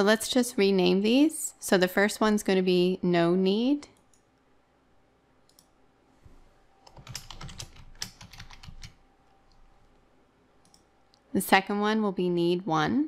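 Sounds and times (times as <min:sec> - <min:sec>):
typing on computer keyboard: 0:06.8 - 0:09.0.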